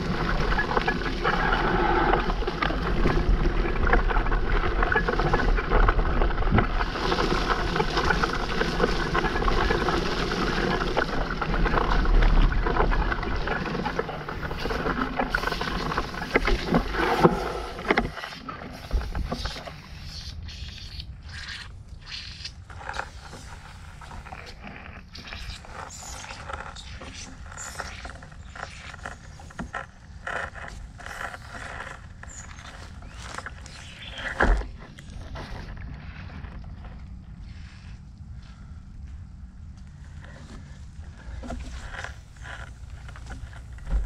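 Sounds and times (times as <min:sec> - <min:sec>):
mountain bike riding on dirt: 0:00.0 - 0:20.2, 0:22.6 - 0:44.0.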